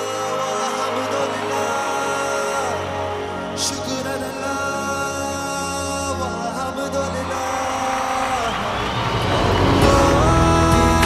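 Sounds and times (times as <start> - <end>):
music with held notes: 0.0 - 11.0
rising rush with falling tones: 7.3 - 11.0.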